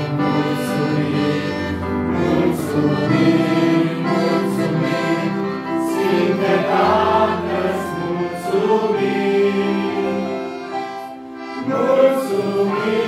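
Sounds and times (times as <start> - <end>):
accordion: 0.0 - 13.0
electronic keyboard: 0.0 - 13.0
group singing a hymn: 0.0 - 13.0.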